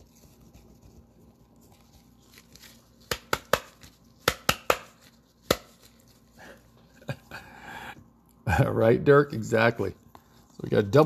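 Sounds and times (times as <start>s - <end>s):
rustling and scraping of cards: 0.0s - 7.2s, 9.6s - 11.0s.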